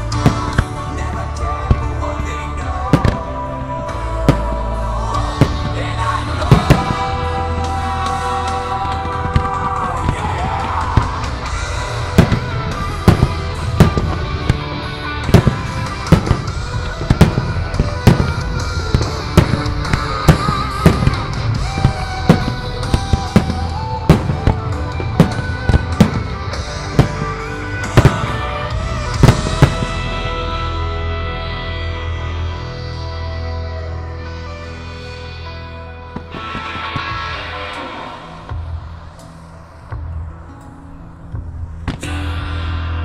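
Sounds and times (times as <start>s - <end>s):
music: 0.0s - 43.0s
firework shells bursting: 5.2s - 30.0s.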